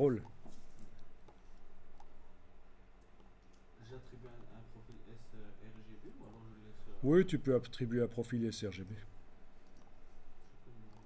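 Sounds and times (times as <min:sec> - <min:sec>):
low steady hum: 0:00.0 - 0:11.0
computer mouse clicks: 0:09.6 - 0:11.0.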